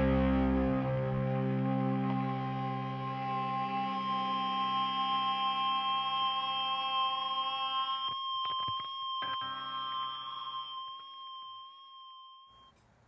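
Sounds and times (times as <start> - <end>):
held rock chord: 0.0 - 6.5.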